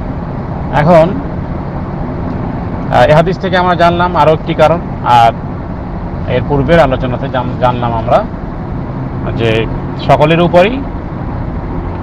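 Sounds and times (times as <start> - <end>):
low rumbling background noise: 0.0 - 12.0
man speaking: 6.3 - 8.3, 9.2 - 10.9.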